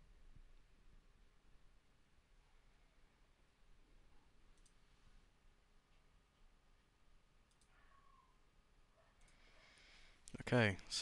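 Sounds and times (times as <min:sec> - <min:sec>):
computer mouse click: 0:04.5 - 0:04.8, 0:07.4 - 0:07.8.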